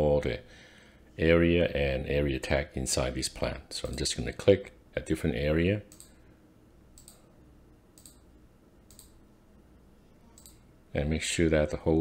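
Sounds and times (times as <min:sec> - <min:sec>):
computer mouse clicking: 0:05.9 - 0:06.2, 0:07.0 - 0:07.3, 0:08.0 - 0:08.3, 0:08.9 - 0:09.2, 0:10.4 - 0:10.6.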